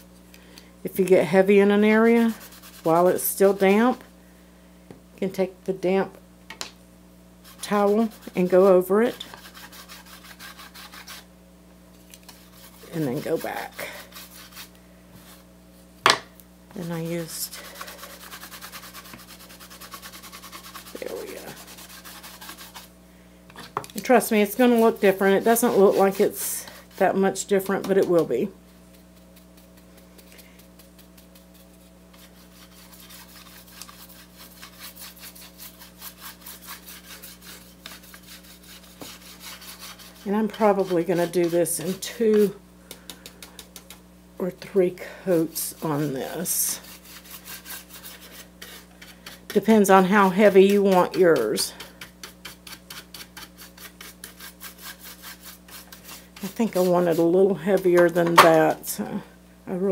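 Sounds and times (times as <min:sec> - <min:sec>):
low electrical hum: 0:00.0 - 0:59.9
brush scrubbing on wood: 0:01.8 - 0:04.0, 0:07.4 - 0:11.3, 0:12.2 - 0:15.4, 0:16.9 - 0:22.9, 0:24.0 - 0:44.0, 0:45.3 - 0:58.7
rag rubbing on wooden board: 0:02.1 - 0:03.9, 0:07.4 - 0:11.3, 0:12.3 - 0:15.4, 0:17.4 - 0:22.9, 0:24.5 - 0:28.1, 0:29.2 - 0:42.6, 0:45.4 - 0:58.5.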